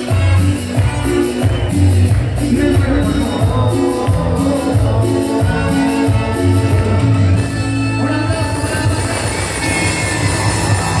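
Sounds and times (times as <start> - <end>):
live band music: 0.0 - 11.0
steady bass line: 0.0 - 11.0.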